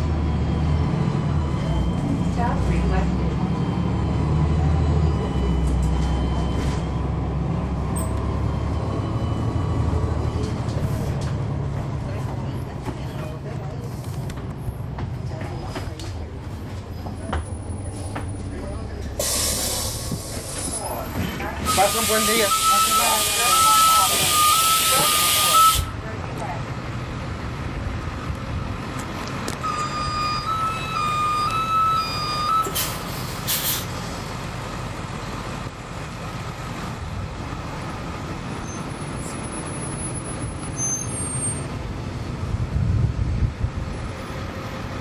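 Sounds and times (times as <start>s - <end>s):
bus diesel engine rumble: 0.0s - 45.0s
road noise: 0.0s - 45.0s
compressed air hiss: 19.2s - 20.5s
beeping tone: 21.6s - 26.0s, 29.6s - 32.8s.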